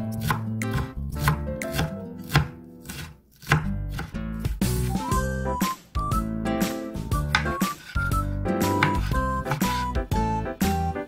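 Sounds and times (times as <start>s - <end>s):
knife chopping on cutting board: 0.0s - 4.9s, 7.1s - 10.0s
light background music: 0.0s - 11.0s.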